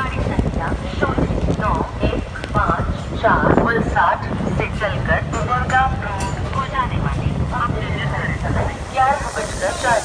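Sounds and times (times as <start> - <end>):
people talking: 0.0 - 10.0
train wheels rumbling on rails: 0.0 - 10.0.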